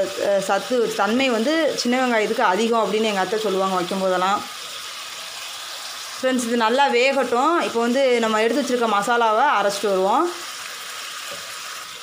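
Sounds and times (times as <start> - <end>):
person talking: 0.0 - 4.5, 6.2 - 10.4
crab sizzling in a steel pot: 0.0 - 12.0.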